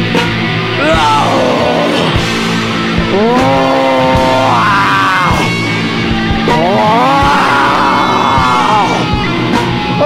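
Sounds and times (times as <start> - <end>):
low bass notes: 0.0 - 10.0
drum hits: 2.0 - 9.3.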